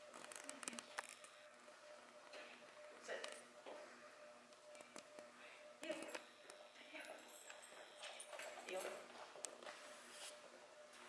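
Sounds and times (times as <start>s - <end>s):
footsteps on rubber matting: 8.2s - 10.4s.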